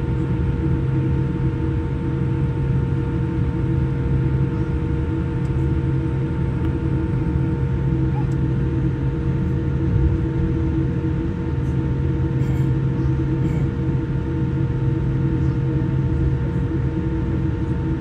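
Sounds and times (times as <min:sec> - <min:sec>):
jet airliner cabin drone: 0:00.0 - 0:18.0.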